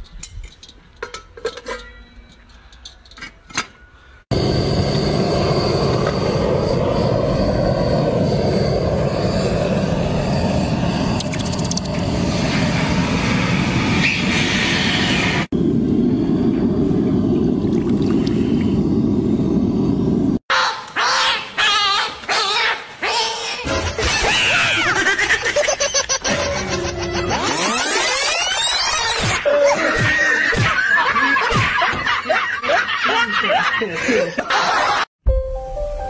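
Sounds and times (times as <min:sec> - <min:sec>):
gas burner roaring: 0:04.3 - 0:20.4.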